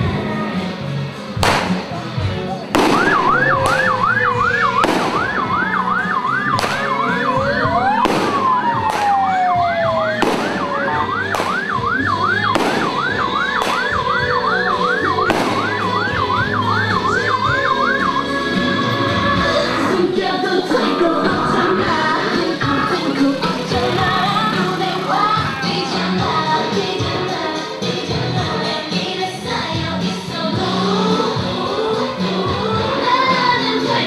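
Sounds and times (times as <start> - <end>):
loud sharp cracks: 1.4 - 2.0, 2.8 - 4.1, 4.8 - 5.4, 6.6 - 7.0, 8.1 - 9.3, 10.2 - 11.8, 12.5 - 14.1, 15.3 - 15.9
electronic yelp siren: 2.9 - 26.4
rising and falling siren whoop: 2.9 - 26.4.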